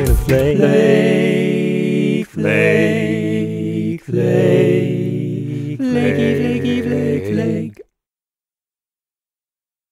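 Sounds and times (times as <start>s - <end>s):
a cappella voices singing: 0.0s - 7.9s.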